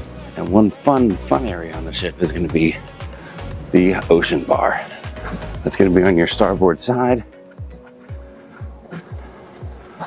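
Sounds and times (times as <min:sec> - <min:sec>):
kick drum beat: 0:02.0 - 0:10.0.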